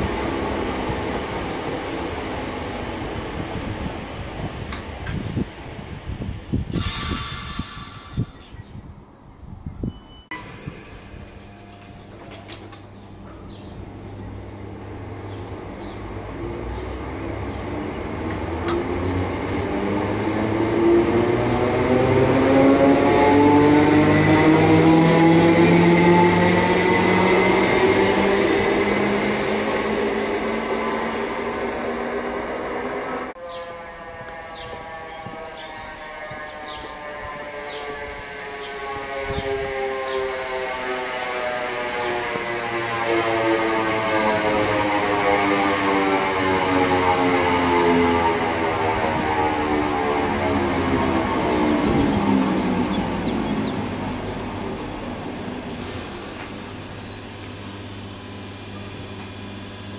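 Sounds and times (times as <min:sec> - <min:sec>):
train motors whining rising: 0:10.3 - 0:14.8, 0:16.4 - 0:59.9
braking train motor whine: 0:24.0 - 0:59.9.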